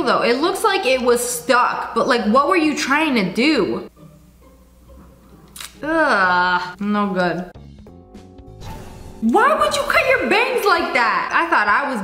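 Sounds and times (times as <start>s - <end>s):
woman groaning: 5.8s - 6.7s.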